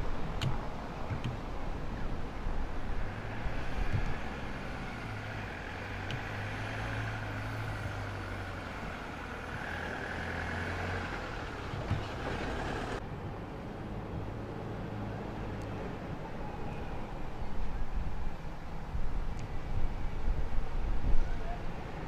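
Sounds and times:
engine low hum: 0.0 - 22.0.

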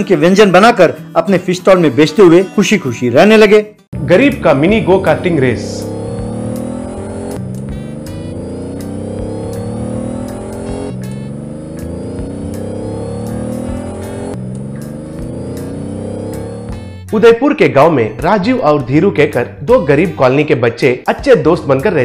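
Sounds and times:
background music with beat: 3.8 - 17.3
go-kart engines revving: 4.0 - 16.9.

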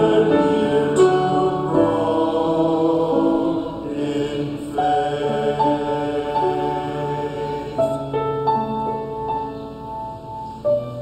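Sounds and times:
men singing together: 0.0 - 8.0.

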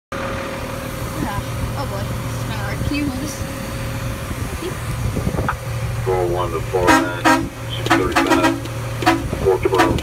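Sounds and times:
truck engine idling: 0.1 - 10.0.

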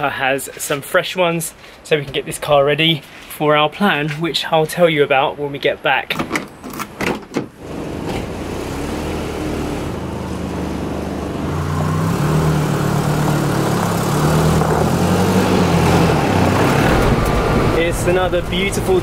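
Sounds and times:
car engine running: 7.7 - 19.0
tyres on gravel: 10.1 - 19.0.

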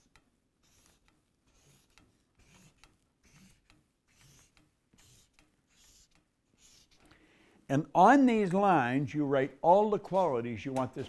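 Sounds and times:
marker drawing on paper: 0.0 - 7.1.

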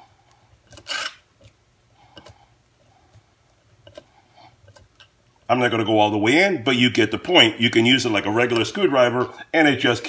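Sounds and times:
screw rasping into wood: 0.7 - 1.2.

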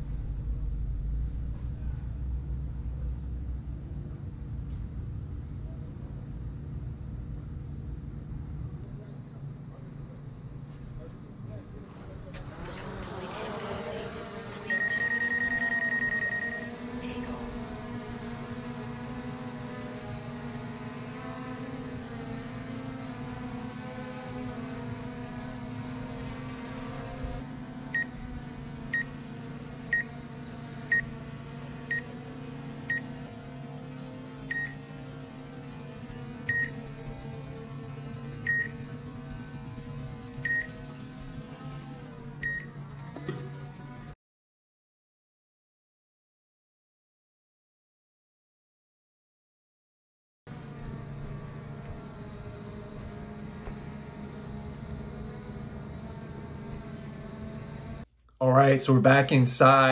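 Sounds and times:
drone propellers humming: 0.0 - 44.1, 50.5 - 58.1
short beeps: 14.7 - 16.7
long electronic beep: 14.7 - 16.8.

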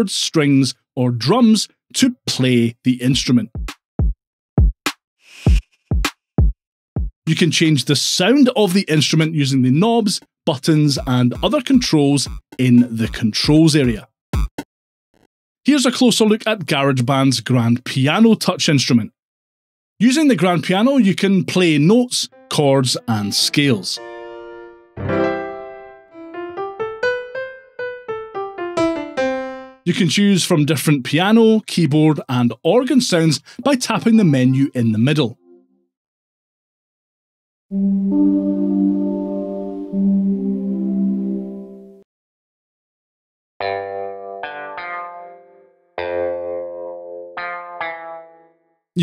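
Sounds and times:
deep kick drum hits: 3.6 - 4.8
piano chords: 23.5 - 29.9, 37.7 - 42.0
piano notes climbing upward: 23.6 - 29.9, 37.7 - 42.0.

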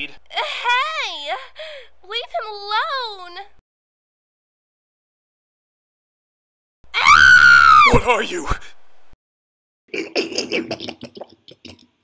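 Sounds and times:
cartoon character screaming: 6.9 - 8.0.

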